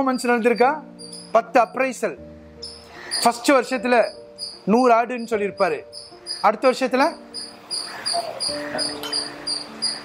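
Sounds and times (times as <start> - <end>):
high-pitched chirps: 0.0 - 1.9, 2.6 - 10.0.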